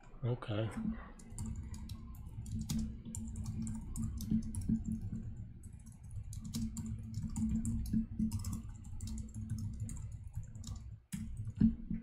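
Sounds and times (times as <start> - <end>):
typing on computer keyboard: 1.1 - 11.8.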